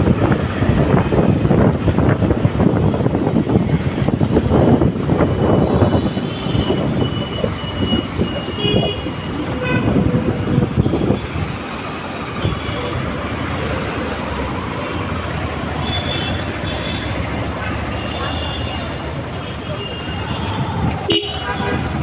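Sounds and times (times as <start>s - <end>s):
wind on microphone: 0.0s - 11.7s
city street traffic: 0.0s - 22.0s.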